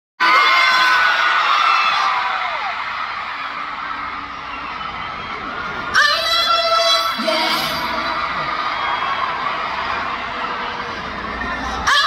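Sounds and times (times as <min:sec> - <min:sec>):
crowd screaming and cheering: 0:00.2 - 0:12.0.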